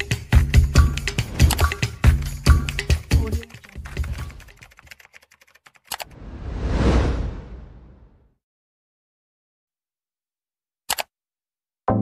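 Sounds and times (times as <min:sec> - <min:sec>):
rush of noise: 0:06.1 - 0:08.2.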